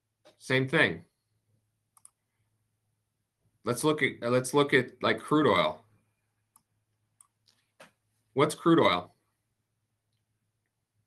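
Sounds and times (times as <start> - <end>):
computer mouse click: 1.9 - 2.2, 6.5 - 8.0.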